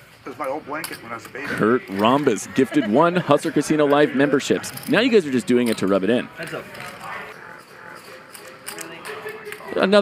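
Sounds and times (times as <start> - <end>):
low voices murmuring: 0.3 - 10.0.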